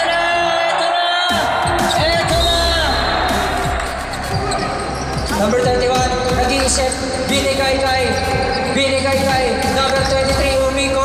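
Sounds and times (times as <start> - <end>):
arena music: 0.0 - 11.0
voices in arena: 0.0 - 11.0.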